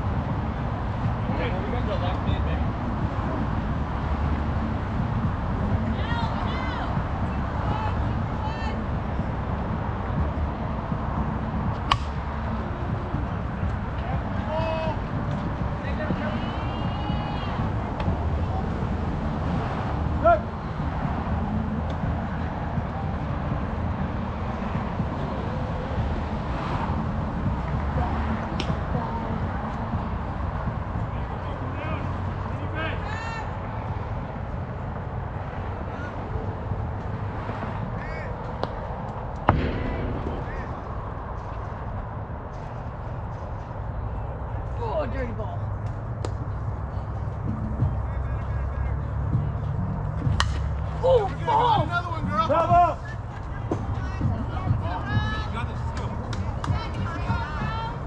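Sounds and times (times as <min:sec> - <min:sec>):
low background rumble: 0:00.0 - 0:58.0
players shouting: 0:05.8 - 0:09.0, 0:14.0 - 0:19.2, 0:20.0 - 0:20.9, 0:31.1 - 0:33.8, 0:50.4 - 0:58.0.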